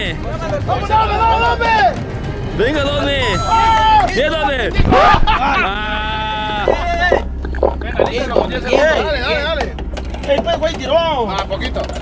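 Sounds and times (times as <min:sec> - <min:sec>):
steady low hum: 0:05.9 - 0:09.4.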